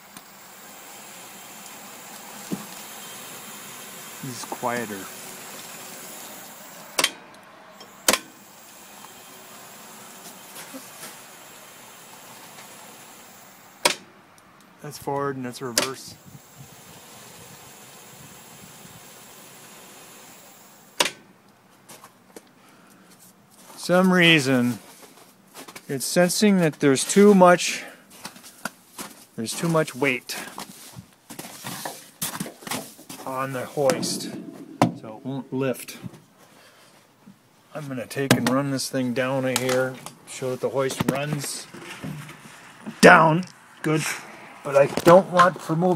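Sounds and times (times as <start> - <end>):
crane motor whirring: 0.0 - 14.0, 15.2 - 21.1.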